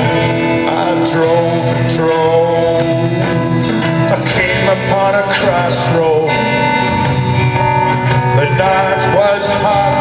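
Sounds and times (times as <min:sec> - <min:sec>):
live blues-rock band: 0:00.0 - 0:10.0.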